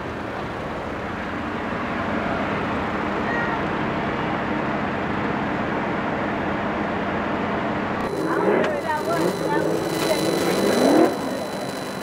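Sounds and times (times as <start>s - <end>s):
car engines running: 0.0s - 12.0s
voices talking and calling out: 8.0s - 12.0s.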